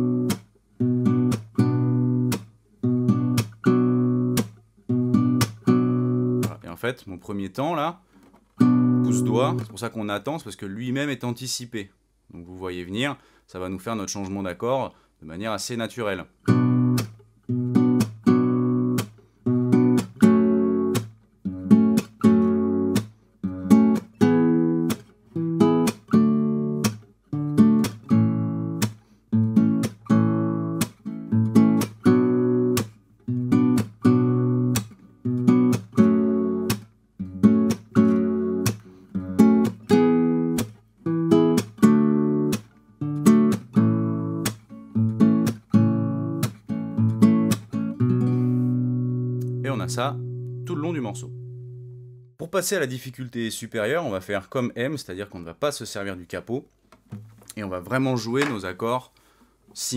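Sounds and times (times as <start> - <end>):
fingerstyle nylon-string guitar: 0.0 - 6.8, 8.1 - 9.9, 16.4 - 52.3
hand slapping guitar strings: 0.2 - 0.5, 1.2 - 1.6, 2.2 - 2.5, 3.3 - 3.6, 4.3 - 4.6, 5.3 - 5.8, 17.8 - 19.2, 20.9 - 21.2, 22.9 - 23.1, 24.8 - 25.1, 26.8 - 27.0, 27.7 - 28.1, 28.7 - 29.0, 29.7 - 30.1, 30.7 - 31.0, 31.7 - 33.0, 33.6 - 36.9, 37.5 - 38.9, 39.5 - 40.8, 41.4 - 43.8, 44.4 - 44.7, 45.3 - 48.4, 58.3 - 58.7.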